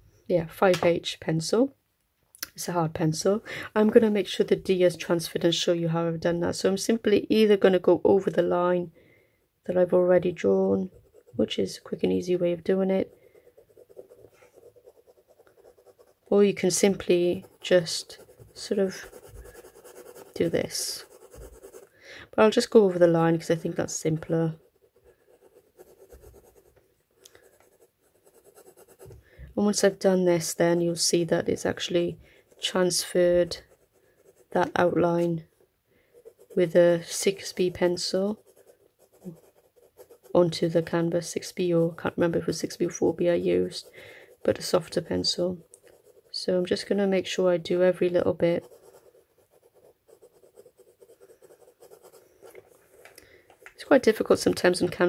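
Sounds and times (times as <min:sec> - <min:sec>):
pencil scratching on paper: 0:10.5 - 0:26.8, 0:27.4 - 0:55.0.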